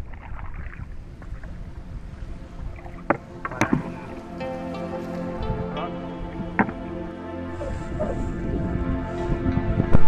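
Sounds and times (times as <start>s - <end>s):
paddle strokes in water: 0.0s - 5.5s
sharp knocks on canoe: 3.1s - 4.0s, 6.5s - 6.8s.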